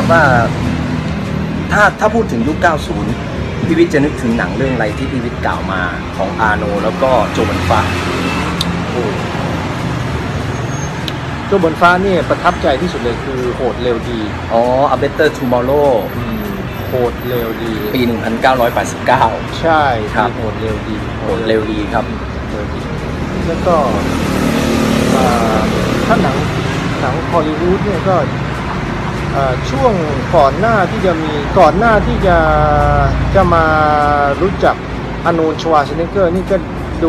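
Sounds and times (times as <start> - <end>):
road noise: 0.0 - 37.0
street traffic noise: 0.0 - 37.0.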